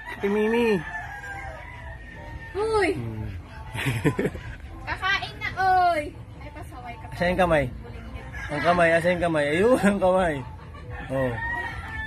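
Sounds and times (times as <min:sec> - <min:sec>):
rooster crowing: 0:00.0 - 0:03.0, 0:08.0 - 0:09.2, 0:10.9 - 0:12.0.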